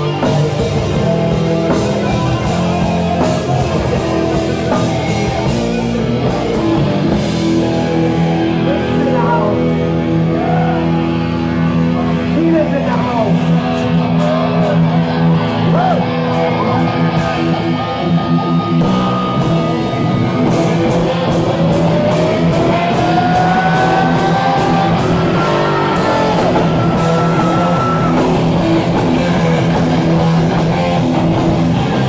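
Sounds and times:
distorted electric guitars: 0.0s - 32.0s
heavy metal band playing: 0.0s - 32.0s.

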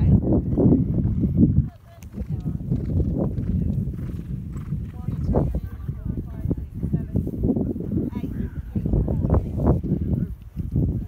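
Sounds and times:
horse hoofbeats on grass: 1.9s - 11.0s
background voices: 4.9s - 11.0s.

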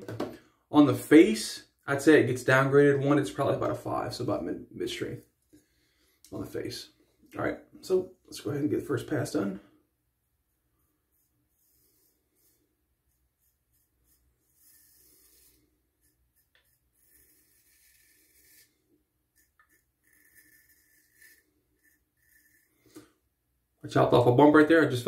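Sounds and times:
razor scraping stubble: 11.1s - 23.1s.

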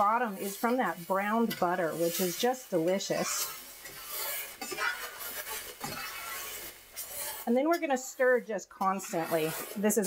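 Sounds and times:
spatula scraping skillet: 0.0s - 10.0s.

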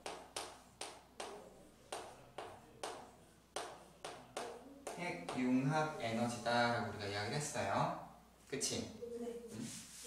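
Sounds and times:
chalk tapping and scratching: 0.0s - 5.6s.

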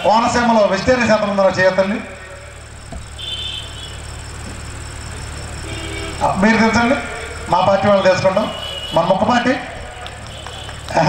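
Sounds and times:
cricket chirping: 0.0s - 11.0s
steady low hum: 0.0s - 11.0s.

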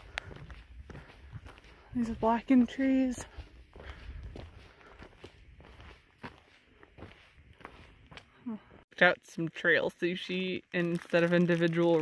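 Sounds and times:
footsteps on a dirt trail: 0.0s - 8.8s.

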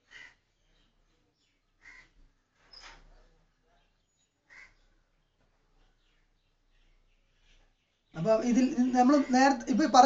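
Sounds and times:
faint bird calls: 0.0s - 8.2s.

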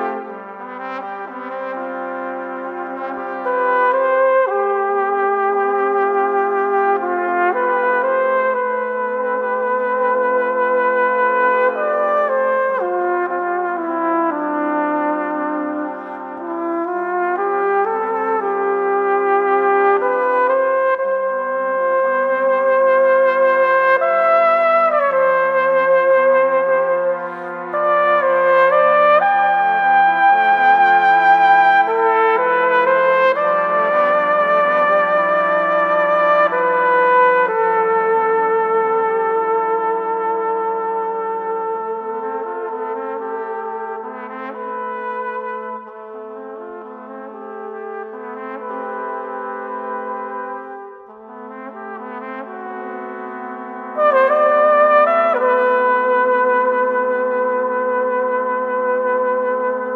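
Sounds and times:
brass ensemble sustained chords: 0.0s - 59.9s
solo trumpet melody: 0.0s - 59.9s.

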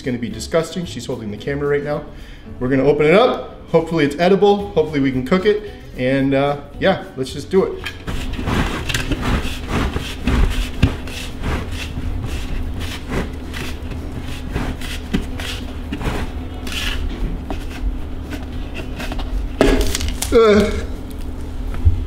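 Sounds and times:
steady low hum: 7.7s - 22.0s
plastic bucket lid pried off: 19.0s - 20.4s.

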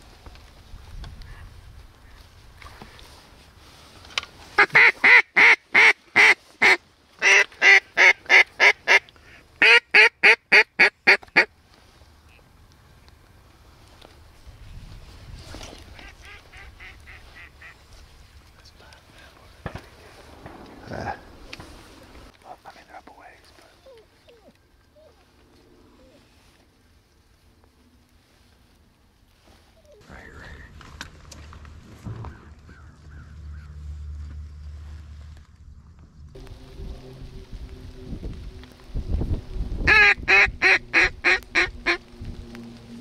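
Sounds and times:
duck call quacks: 4.6s - 11.5s, 16.0s - 17.8s, 39.9s - 42.0s.

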